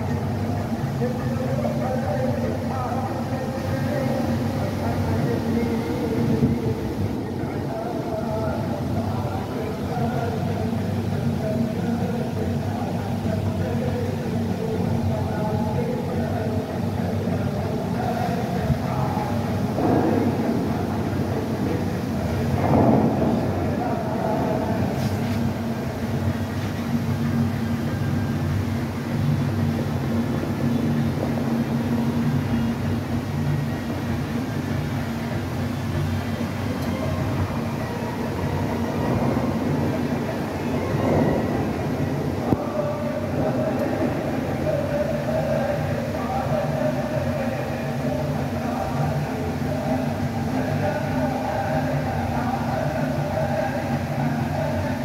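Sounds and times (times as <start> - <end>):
crowd chattering: 0.0 - 55.0
steady sustained tones: 0.0 - 55.0
water jets rushing: 0.0 - 55.0.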